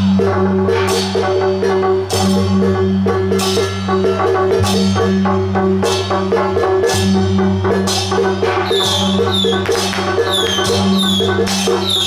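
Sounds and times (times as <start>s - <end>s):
procession percussion: 8.4s - 12.0s
high metallic falling notes: 8.6s - 12.0s.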